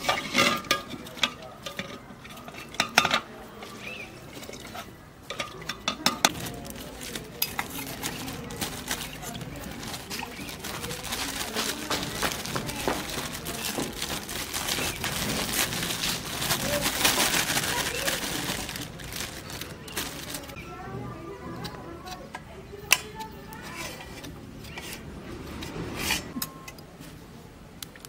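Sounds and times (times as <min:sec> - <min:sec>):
metal ladle stirring in pot: 0:00.0 - 0:11.9
steel dishes clattering: 0:00.0 - 0:12.0
plastic bag rustling: 0:06.2 - 0:20.6.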